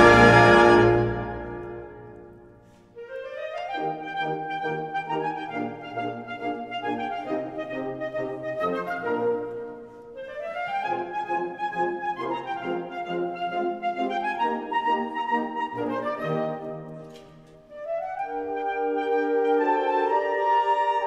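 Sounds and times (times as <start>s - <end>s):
symphonic wind band playing: 0.0s - 21.0s.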